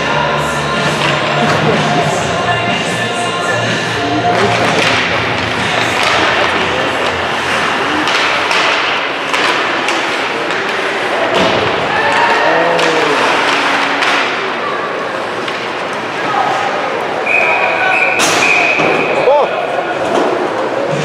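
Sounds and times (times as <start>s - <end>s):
crowd murmur: 0.0s - 21.0s
sticks and puck knocking: 4.2s - 11.6s, 12.2s - 14.4s
people shouting: 11.8s - 14.2s.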